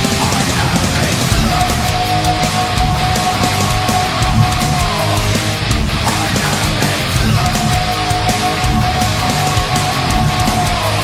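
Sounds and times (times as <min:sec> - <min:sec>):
distorted electric guitar: 0:00.0 - 0:11.0
heavy metal backing track: 0:00.0 - 0:11.0.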